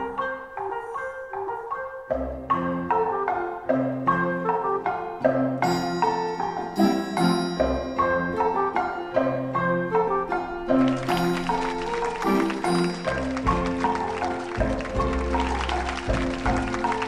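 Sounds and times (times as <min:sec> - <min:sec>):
folk dance music: 0:00.0 - 0:17.0.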